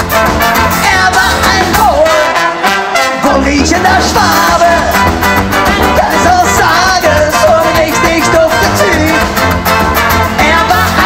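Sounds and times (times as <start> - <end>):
acoustic guitar: 0.0 - 11.0
drum kit: 0.0 - 11.0
trombone and trumpet: 0.0 - 11.0
woman singing: 0.8 - 2.3, 10.4 - 11.0.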